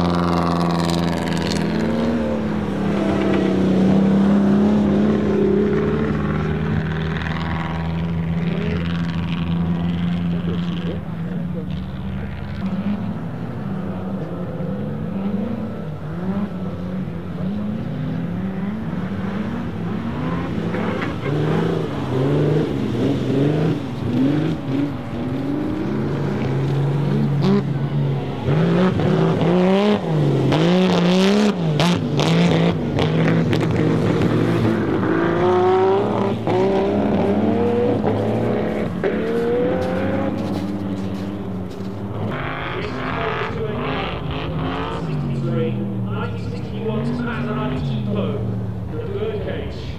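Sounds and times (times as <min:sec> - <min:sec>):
racing car engines revving: 0:00.0 - 0:49.9.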